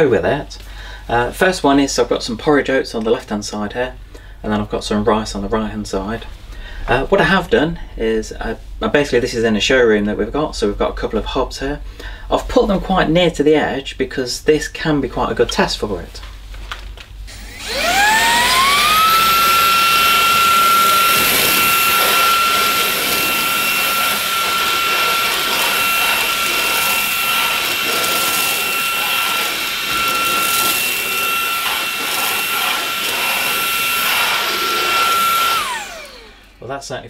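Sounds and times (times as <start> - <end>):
handheld vacuum cleaner whine: 17.3 - 36.7
vacuum sucking up grains: 17.3 - 36.8.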